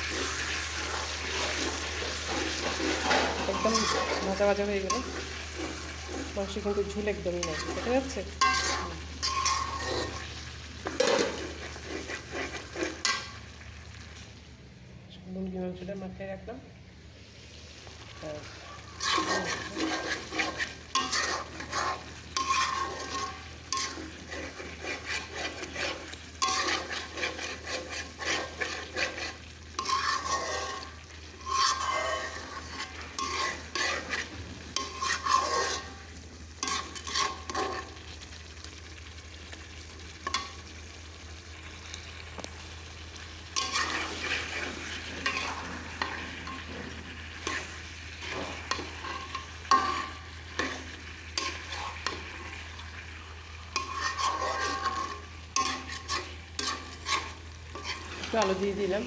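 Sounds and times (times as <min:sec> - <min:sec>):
metal spatula scraping a pan: 0:00.0 - 0:13.6, 0:18.4 - 0:38.8, 0:40.2 - 0:41.0, 0:43.5 - 0:59.0
food frying: 0:00.0 - 0:14.7, 0:17.0 - 0:59.0.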